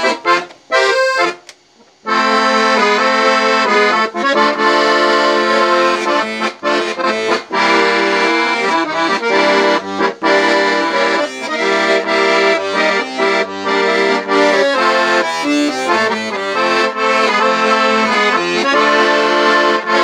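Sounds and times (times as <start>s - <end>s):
piano accordion melody: 0.0s - 20.0s.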